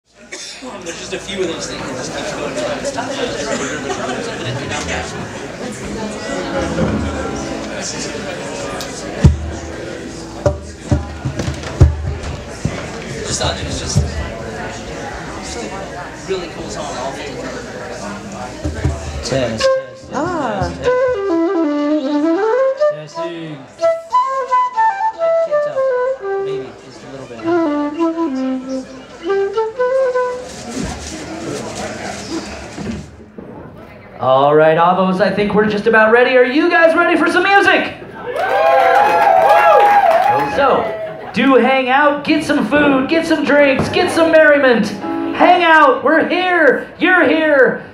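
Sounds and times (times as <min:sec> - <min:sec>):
concert flute melody: 0:06.2 - 0:10.8, 0:19.3 - 0:31.4, 0:44.9 - 0:45.4
bass drum thumps: 0:09.2 - 0:09.7, 0:10.4 - 0:14.4, 0:20.1 - 0:21.2
audience applause: 0:38.3 - 0:41.3.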